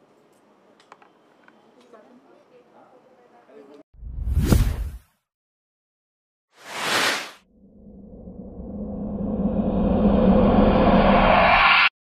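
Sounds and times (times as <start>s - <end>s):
whoosh with deep boom: 4.0s - 5.0s.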